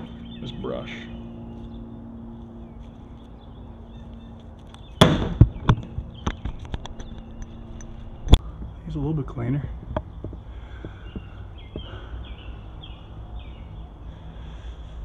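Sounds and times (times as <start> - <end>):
steady low hum: 0.0 - 15.0
knocks and clatters on tote: 9.8 - 11.8.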